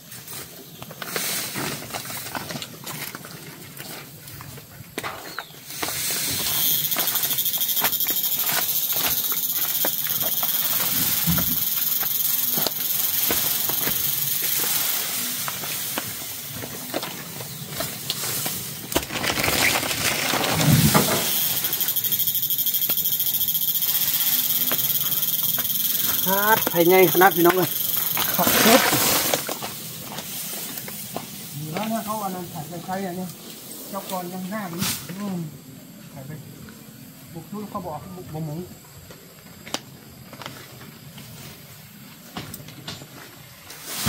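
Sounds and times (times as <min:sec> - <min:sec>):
high insect drone: 0:00.0 - 0:44.0
dry thatch rustling and knocking: 0:00.1 - 0:21.8, 0:24.7 - 0:32.4.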